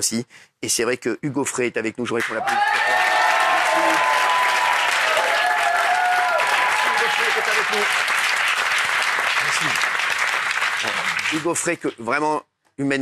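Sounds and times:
studio audience applauding: 0:02.1 - 0:12.1.

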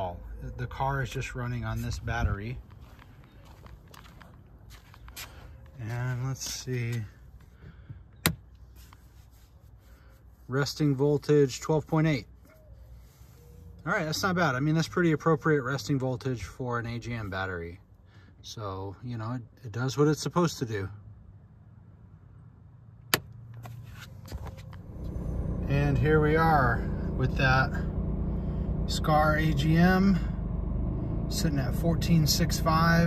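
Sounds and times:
faint low hum in car cabin: 0:00.0 - 0:20.9, 0:23.0 - 0:33.0
car engine starting and running: 0:23.0 - 0:33.0.

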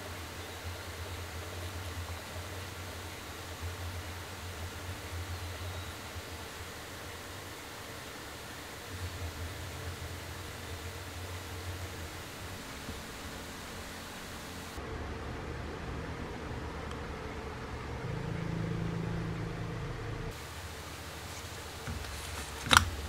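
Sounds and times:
background hiss: 0:00.0 - 0:15.0, 0:16.7 - 0:23.0
low hum: 0:00.0 - 0:23.0
hands rustling on camera: 0:21.2 - 0:23.0.

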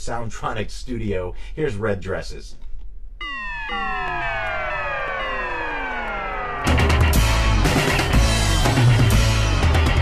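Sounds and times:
chord sliding down in pitch: 0:03.2 - 0:08.4.

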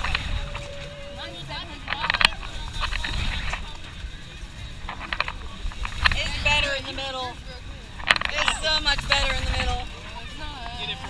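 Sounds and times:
riders' voices and laughter: 0:00.0 - 0:11.0
wind rushing over microphone: 0:00.0 - 0:11.0.

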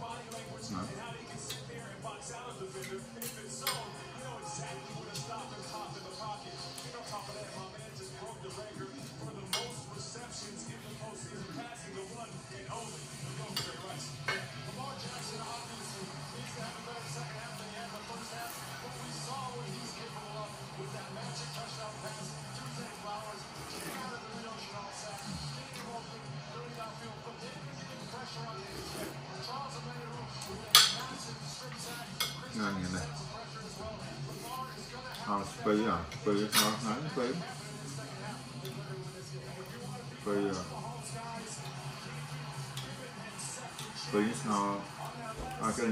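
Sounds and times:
television speech and music: 0:00.0 - 0:45.9
cutlery clinking against a plate: 0:01.3 - 0:01.8, 0:02.7 - 0:04.1, 0:09.0 - 0:10.4, 0:13.3 - 0:20.1, 0:30.4 - 0:32.6, 0:36.0 - 0:37.1, 0:38.5 - 0:39.0, 0:41.6 - 0:44.1
cutlery clinking on ceramic plate: 0:02.8 - 0:04.0, 0:09.5 - 0:09.8, 0:13.5 - 0:14.6, 0:30.4 - 0:32.5, 0:36.1 - 0:36.9.

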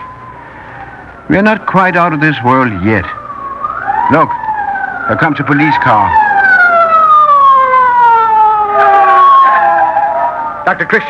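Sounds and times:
second siren tone: 0:00.0 - 0:01.2, 0:02.0 - 0:10.6
police siren wailing: 0:00.0 - 0:11.0.

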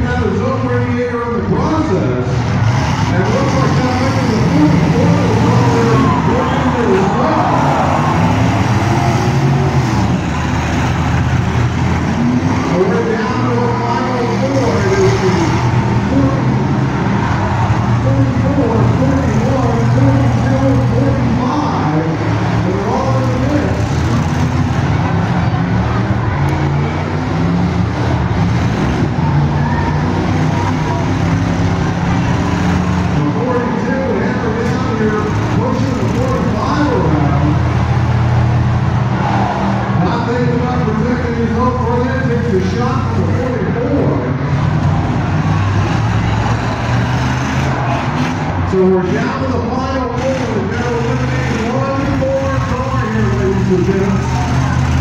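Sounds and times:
car engines revving: 0:00.0 - 0:55.0
crowd chatter: 0:00.0 - 0:55.0.

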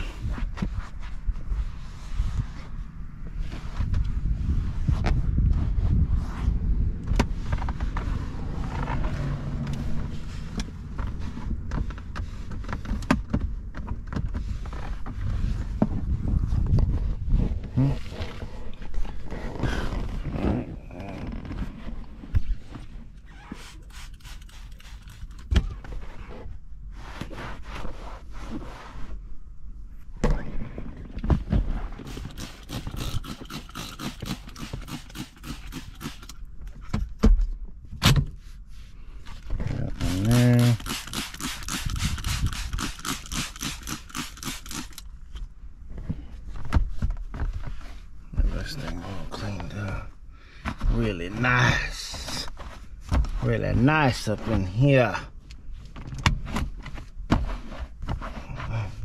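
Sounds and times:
cloth wiping and rubbing: 0:05.6 - 0:06.6, 0:22.5 - 0:29.2, 0:38.4 - 0:39.0, 0:39.9 - 0:43.7
spray bottle squirts: 0:23.5 - 0:25.4, 0:32.0 - 0:36.3, 0:40.0 - 0:45.0.

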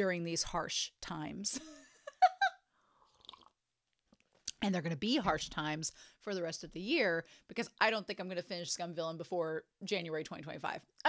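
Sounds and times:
woman laughing: 0:01.5 - 0:02.6
sipping and swallowing: 0:03.0 - 0:04.6.

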